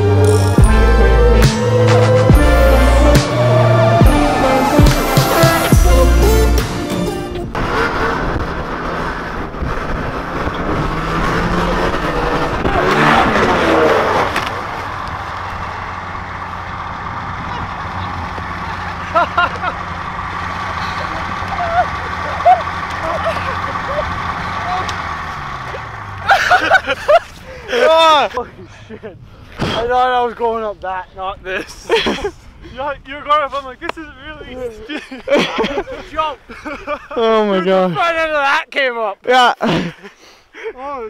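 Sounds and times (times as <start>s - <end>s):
snowmobile engine under throttle: 7.5s - 28.0s.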